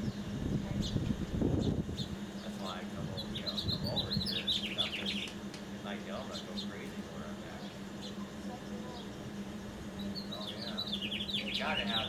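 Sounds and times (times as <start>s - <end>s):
small birds chirping: 0.0s - 12.0s
steady low hum: 0.0s - 12.0s.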